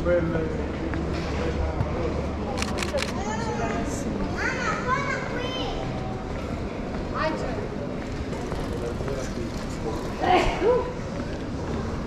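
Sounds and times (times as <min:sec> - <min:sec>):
passers-by talking: 0:00.0 - 0:12.0
camera shutter clicks: 0:02.6 - 0:03.2
child's high voice: 0:04.3 - 0:05.9.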